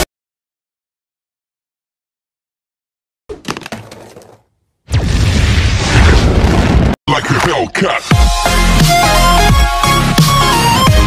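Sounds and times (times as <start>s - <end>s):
explosion with deep rumble: 4.9s - 7.0s.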